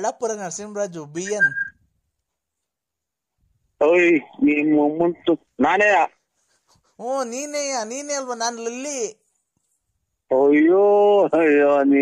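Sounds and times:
person speaking: 0.0s - 1.7s, 3.8s - 12.0s.

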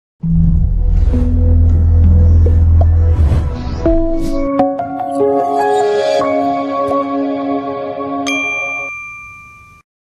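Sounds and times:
soft ambient music pad: 0.5s - 8.9s
bell-like chime ding: 8.2s - 9.8s.

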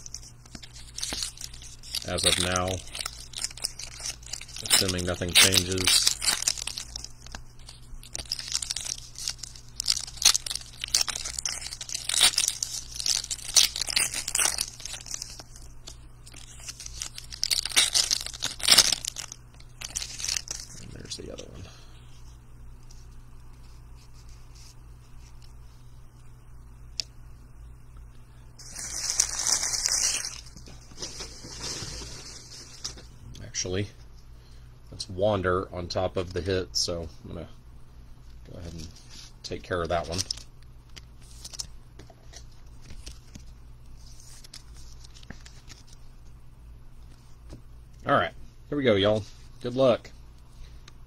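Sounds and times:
foil wrappers tearing and crinkling: 0.0s - 21.4s, 28.6s - 33.0s, 38.6s - 41.7s, 42.4s - 46.0s
steady low hum: 0.0s - 51.0s.

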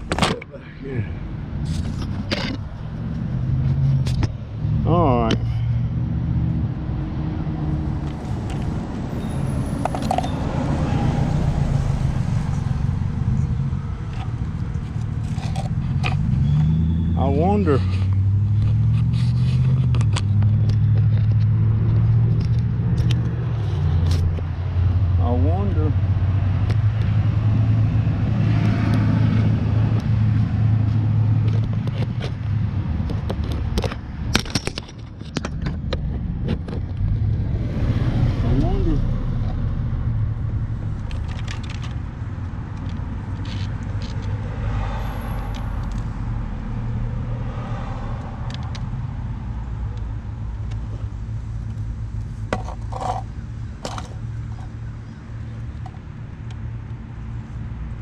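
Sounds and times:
scrapes and knocks: 52.4s - 54.7s.

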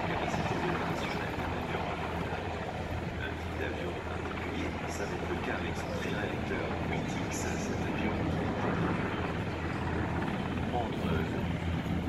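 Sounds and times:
faint voices: 0.0s - 12.0s
helicopter rotor and engine drone: 0.0s - 12.0s.

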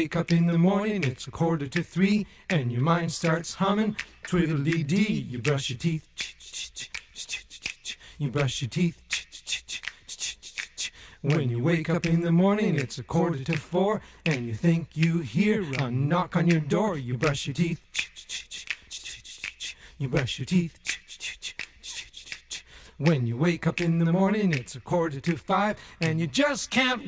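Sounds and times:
vocal hissing imitating toothbrush: 3.9s - 11.3s, 17.7s - 23.2s
voice making hissing ch sounds: 17.8s - 19.9s.

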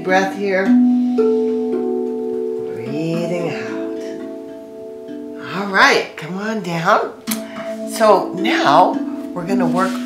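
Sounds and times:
steel tongue drum notes: 0.0s - 10.0s.

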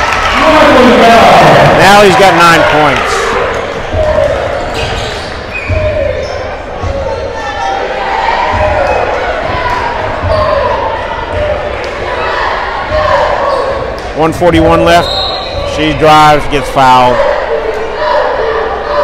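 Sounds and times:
echoing voices in hall: 0.0s - 19.0s.

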